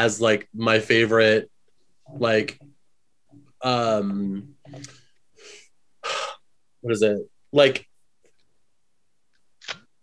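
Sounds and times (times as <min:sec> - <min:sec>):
person speaking: 0:00.0 - 0:02.8, 0:03.4 - 0:05.0.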